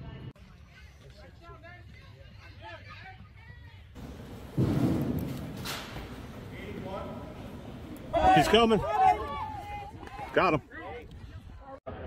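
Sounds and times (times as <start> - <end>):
loud dull thump: 4.0 - 6.3
sharp crack: 4.0 - 8.2.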